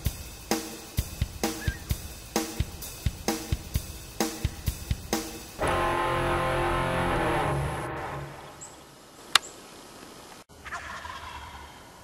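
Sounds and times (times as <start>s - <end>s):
turkey gobbling: 1.5s - 1.9s, 10.6s - 12.0s.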